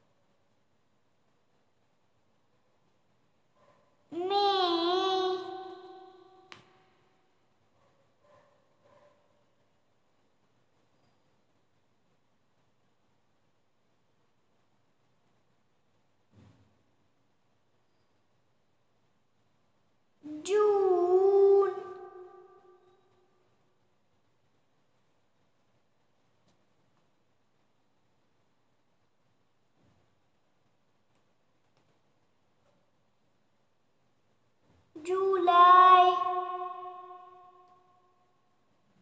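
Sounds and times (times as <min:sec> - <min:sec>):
voice drawing out a word: 0:04.1 - 0:06.5, 0:20.3 - 0:22.8, 0:35.0 - 0:37.6.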